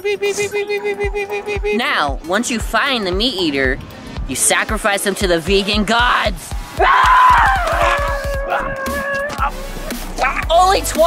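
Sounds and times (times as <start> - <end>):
music with fast pulsing beat: 0.0 - 11.0
long scream sliding down: 6.8 - 9.4.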